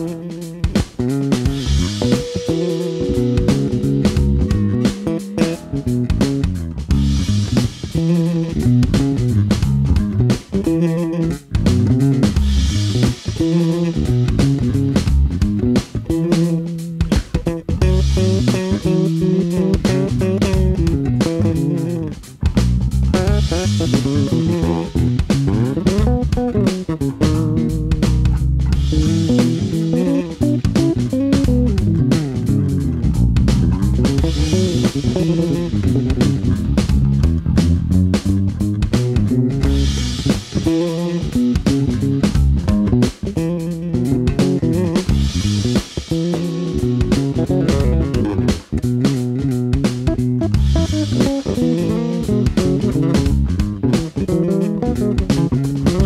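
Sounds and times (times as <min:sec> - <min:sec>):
electric bass plucked fingerstyle: 0:00.0 - 0:56.0.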